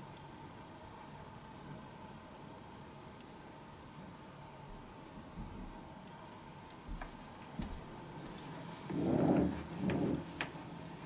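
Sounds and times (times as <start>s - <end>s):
cloth towel rustling: 7.0s - 11.0s.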